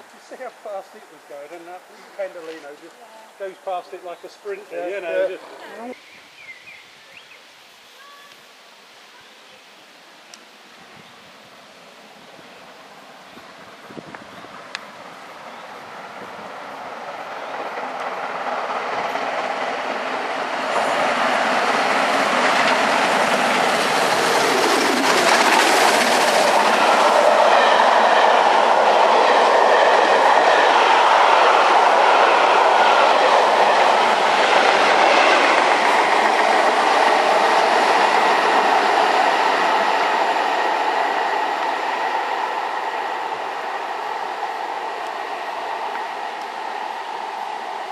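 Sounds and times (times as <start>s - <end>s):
passenger train passing: 0.0s - 7.3s, 10.3s - 47.9s.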